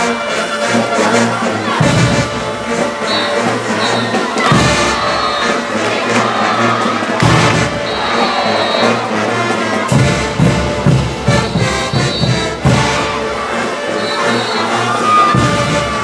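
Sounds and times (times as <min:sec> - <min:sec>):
accented band hits: 0:00.0 - 0:16.0
drums: 0:00.0 - 0:16.0
trumpets and trombones: 0:00.0 - 0:16.0.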